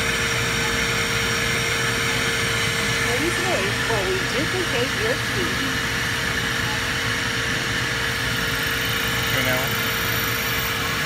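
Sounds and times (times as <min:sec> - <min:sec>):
machinery whirring hum: 0:00.0 - 0:11.0.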